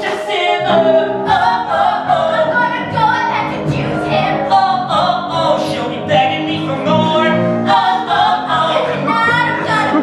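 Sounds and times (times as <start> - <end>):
grand piano: 0.0 - 10.0
man and woman singing duet: 0.0 - 10.0.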